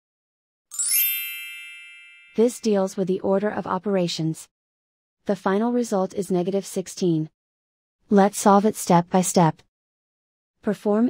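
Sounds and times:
chime ringing: 0.7 - 2.7.

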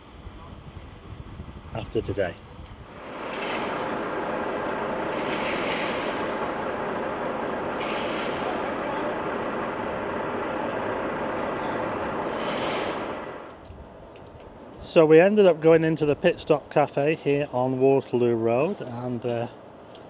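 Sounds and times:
heavy vehicle engine running: 2.7 - 13.6
short hisses: 12.2 - 13.4.

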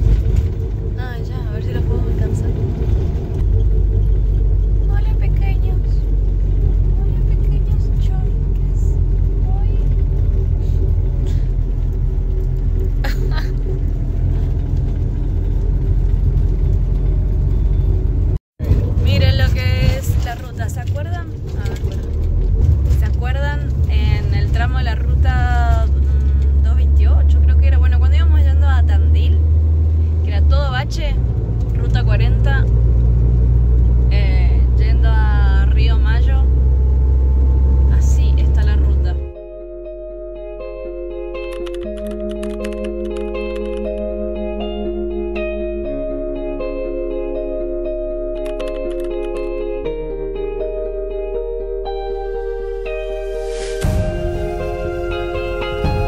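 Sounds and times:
vehicle engine rumble: 0.0 - 56.0.

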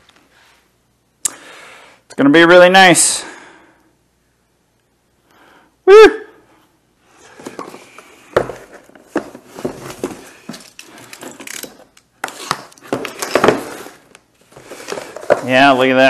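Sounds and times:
cardboard packaging rustling and scraping: 7.2 - 16.0.

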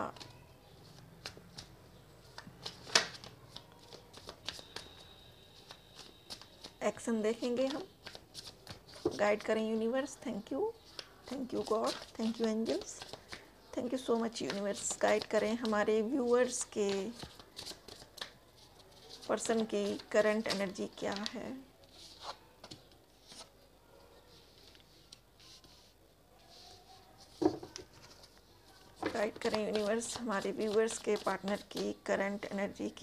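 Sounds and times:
cards being shuffled: 0.2 - 5.0, 5.6 - 6.7, 7.4 - 9.2, 26.6 - 32.0
cards tapping together: 5.6 - 6.7.

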